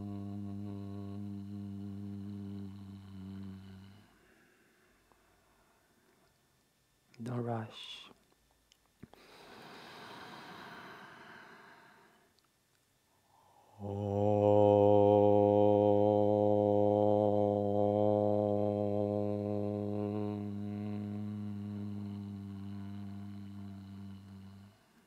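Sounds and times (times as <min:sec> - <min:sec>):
man chanting low om: 0:00.0 - 0:04.2, 0:13.5 - 0:25.0.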